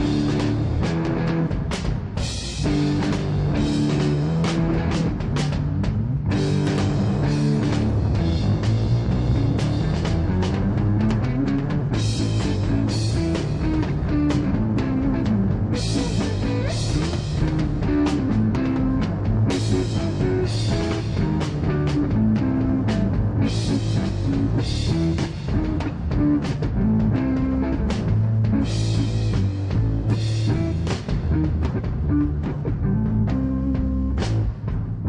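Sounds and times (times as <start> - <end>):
bass guitar: 0.0 - 35.0
distorted electric guitar: 0.0 - 35.0
drum kit: 0.0 - 35.0.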